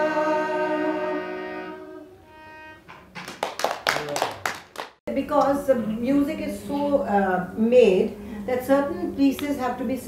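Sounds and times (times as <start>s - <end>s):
group singing with harmonium: 0.0s - 2.7s
people clapping: 2.9s - 5.0s.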